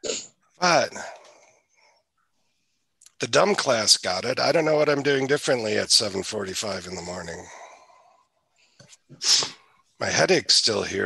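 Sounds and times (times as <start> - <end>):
person breathing out sharply: 9.2 - 9.6.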